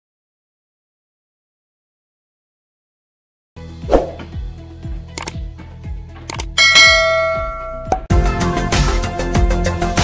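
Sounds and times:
bright bell-like chime: 6.6s - 7.9s
sharp percussion hits: 6.6s - 8.1s.

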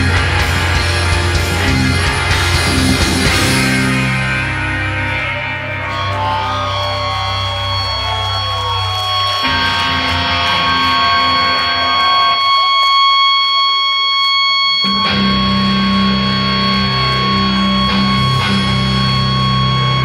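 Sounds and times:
heavy bass: 0.0s - 12.8s, 14.8s - 20.0s
electric guitar chords ringing: 0.0s - 20.0s
metal band playing live: 0.0s - 20.0s.

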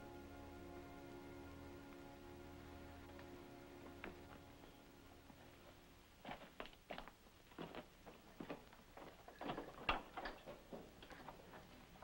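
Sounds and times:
footsteps on rock floor: 6.2s - 11.4s.

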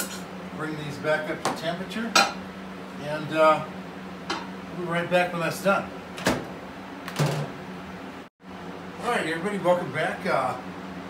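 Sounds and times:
low workshop hum: 0.0s - 11.0s.

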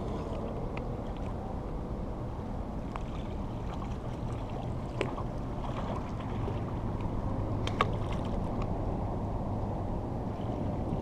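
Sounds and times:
water at the shore: 0.0s - 11.0s
wind: 0.0s - 11.0s.

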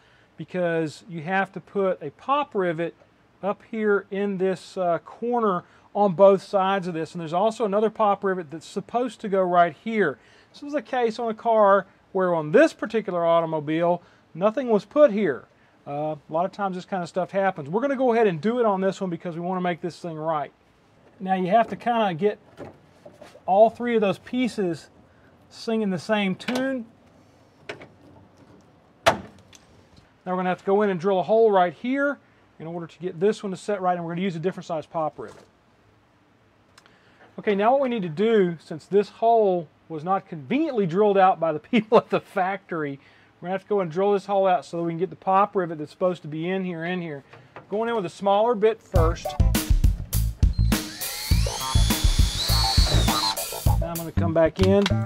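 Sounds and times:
faint room noise: 0.0s - 49.4s
background music with steady beat: 49.0s - 55.0s
cordless drill whining: 50.4s - 53.8s.

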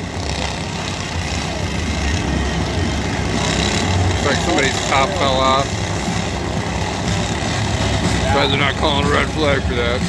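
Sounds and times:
lawn tractor engines droning: 0.0s - 10.0s.

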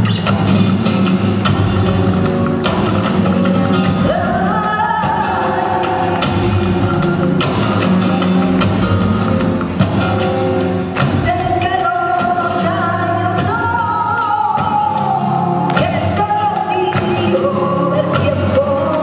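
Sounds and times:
flamenco guitar music: 0.0s - 19.0s.

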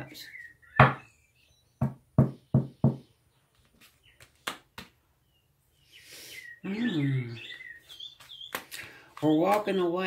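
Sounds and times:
knocks on a tabletop: 0.8s - 1.0s
cards being handled: 3.5s - 5.0s, 7.8s - 9.8s.

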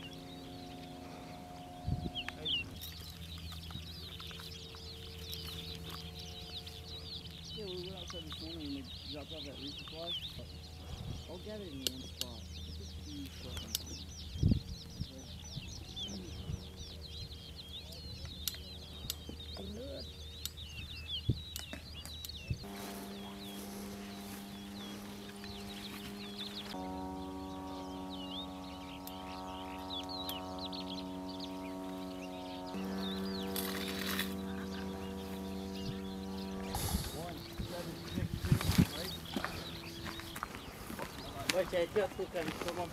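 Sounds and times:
birds chirping: 0.0s - 42.9s
low steady hum: 0.0s - 42.9s
music of sustained chords: 0.0s - 42.9s.

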